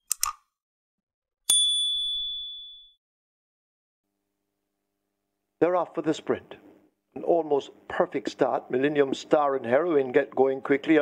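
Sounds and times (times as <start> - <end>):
bright bell ding: 1.5 - 3.0.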